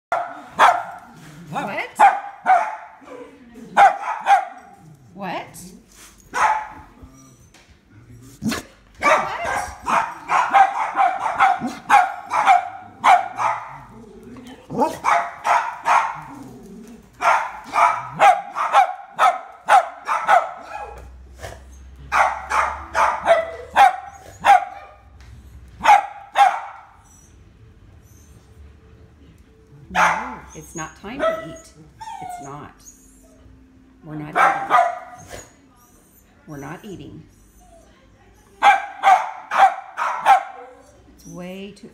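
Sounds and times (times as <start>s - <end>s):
dog barking: 0.1s - 1.1s, 2.0s - 3.0s, 3.8s - 4.8s, 6.3s - 6.9s, 8.5s - 13.9s, 14.7s - 16.4s, 17.2s - 21.1s, 22.1s - 25.2s, 25.8s - 27.0s, 29.9s - 30.6s, 31.2s - 31.7s, 34.3s - 35.5s, 38.6s - 41.0s.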